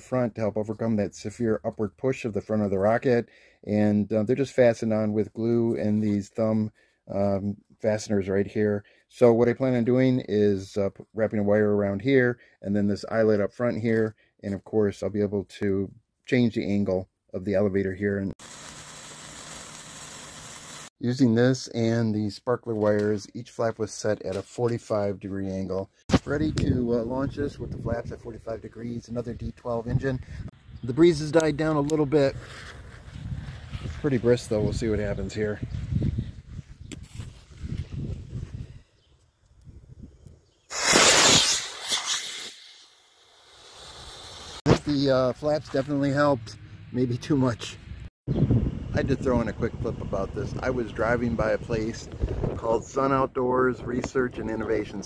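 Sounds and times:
rocket motor hissing: 0:18.4 - 0:20.9, 0:40.7 - 0:44.6
sparklers fizzing: 0:18.4 - 0:20.9, 0:40.7 - 0:43.0.

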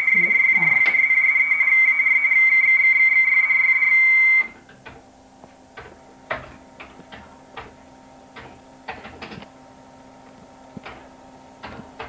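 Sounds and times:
high-pitched radio tone: 0:00.0 - 0:04.6.

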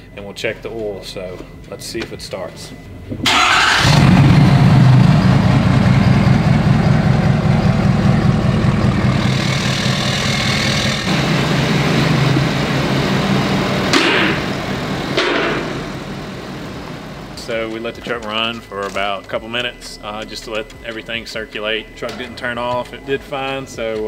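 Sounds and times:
diesel engine idling: 0:03.2 - 0:17.9.

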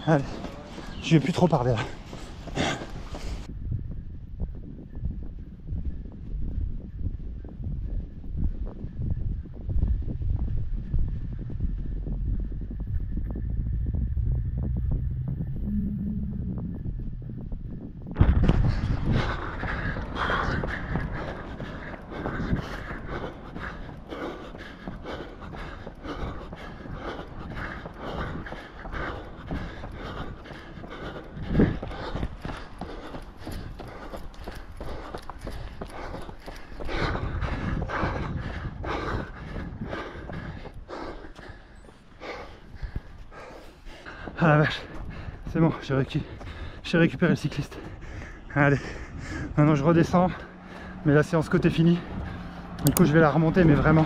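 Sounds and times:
runner breathing hard: 0:00.0 - 0:54.0
wind rumble on microphone: 0:00.0 - 0:54.0.

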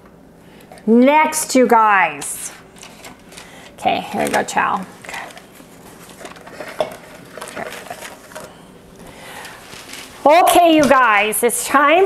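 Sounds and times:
kitchen utensils and dishes clattering: 0:06.2 - 0:08.5.

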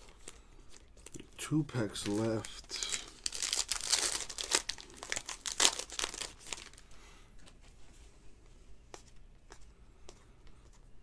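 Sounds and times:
foil wrapper tearing and crinkling: 0:01.8 - 0:06.8.

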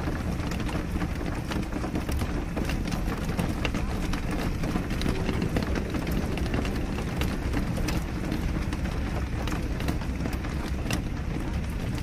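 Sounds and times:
raindrops ticking: 0:00.0 - 0:12.0
rainfall: 0:00.0 - 0:12.0.

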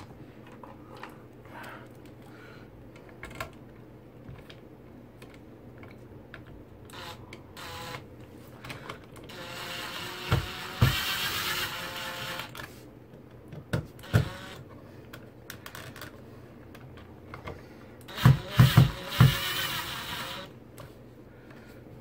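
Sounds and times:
cordless drill whirring: 0:06.9 - 0:08.0, 0:09.3 - 0:12.6, 0:14.0 - 0:14.6, 0:18.0 - 0:20.6.

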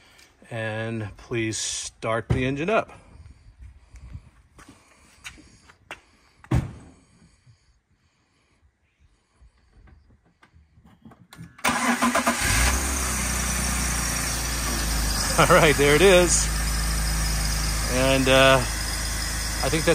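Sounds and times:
car engine starting and idling: 0:11.4 - 0:19.9.

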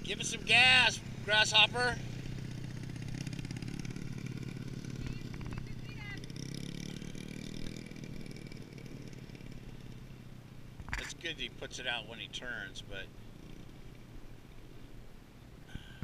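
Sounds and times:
dirt bike engine revving: 0:00.0 - 0:10.2.

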